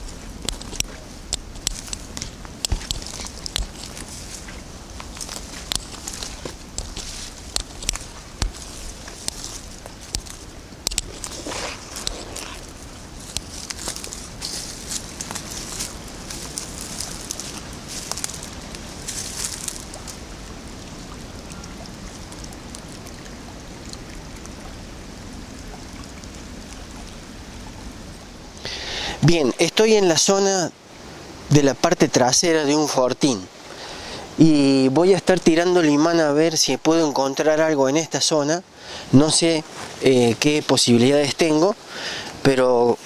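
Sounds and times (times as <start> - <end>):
faint outdoor hiss: 0.0 - 43.0
footsteps on fallen leaves: 1.8 - 21.1, 39.6 - 40.1.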